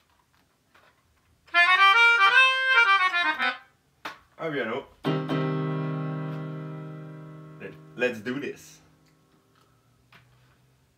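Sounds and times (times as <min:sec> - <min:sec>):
melodica playing sustained chords: 0:01.5 - 0:03.7, 0:05.1 - 0:09.2.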